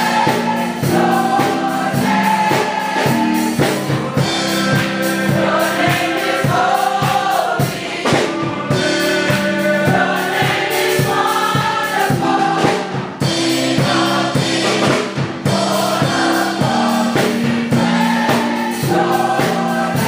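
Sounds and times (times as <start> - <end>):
drum kit: 0.0 - 20.0
gospel choir singing: 0.0 - 20.0
keyboard: 0.0 - 20.0.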